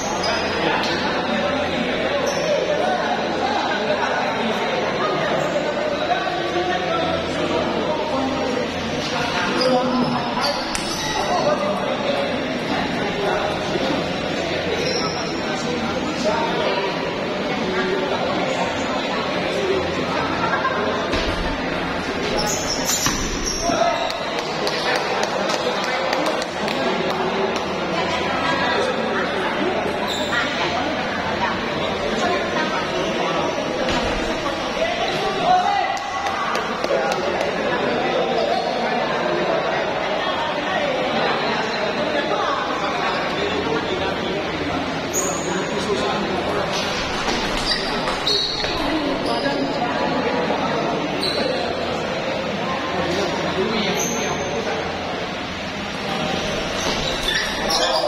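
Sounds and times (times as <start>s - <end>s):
hubbub of voices: 0.0s - 58.0s
people talking: 0.0s - 58.0s.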